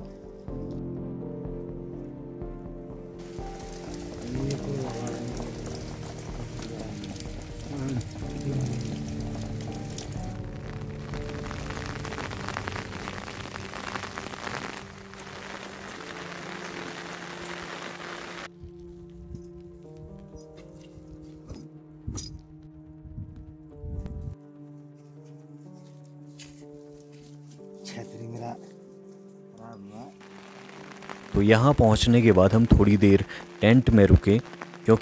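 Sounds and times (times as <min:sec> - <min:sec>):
music with sustained notes: 0:00.0 - 0:35.0
steady rain hiss: 0:03.2 - 0:22.0, 0:25.8 - 0:35.0.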